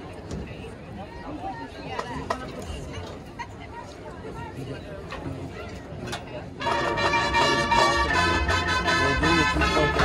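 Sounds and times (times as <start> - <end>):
marching band brass chords: 6.6 - 10.0.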